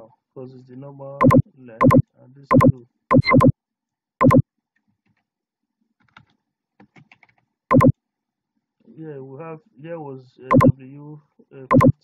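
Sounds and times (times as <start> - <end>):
typing on a keyboard: 6.0 - 7.9, 11.7 - 12.0.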